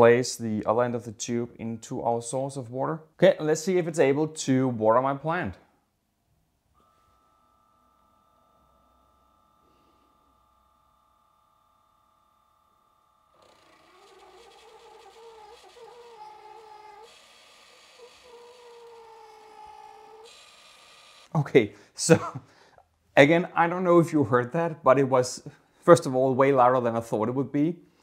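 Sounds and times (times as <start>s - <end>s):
electric water pump humming: 6.8s - 21.4s.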